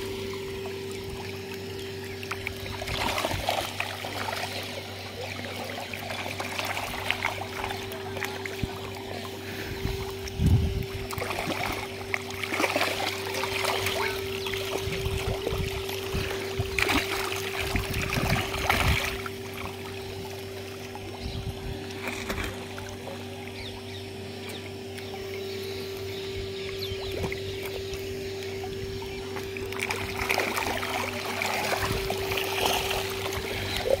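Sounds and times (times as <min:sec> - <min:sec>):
river water splashing and lapping: 0:00.0 - 0:34.0
steady low hum: 0:00.0 - 0:34.0
steady mechanical drone: 0:00.0 - 0:34.0.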